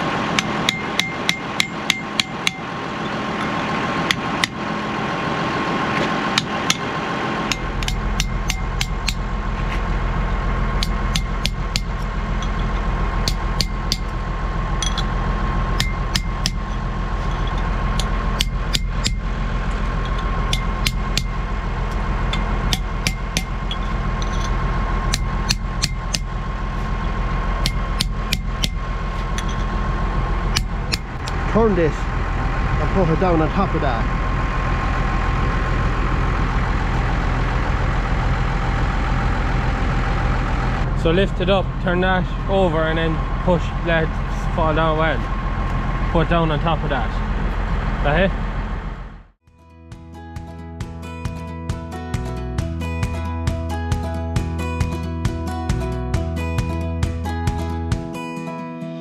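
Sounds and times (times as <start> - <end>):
engine hum: 0.0 - 58.2
hammer tapping metal punch: 0.4 - 2.7, 7.5 - 9.2, 10.8 - 12.6, 13.2 - 14.1, 15.8 - 16.7, 27.6 - 28.8.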